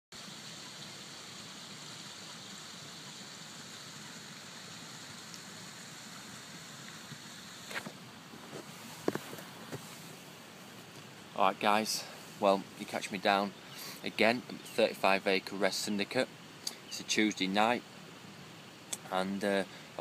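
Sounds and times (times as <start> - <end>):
outdoor background hiss: 0.1 - 20.0.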